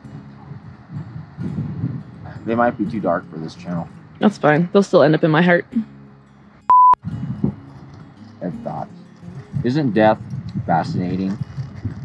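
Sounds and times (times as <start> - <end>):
censor bleep: 6.7 - 7.0.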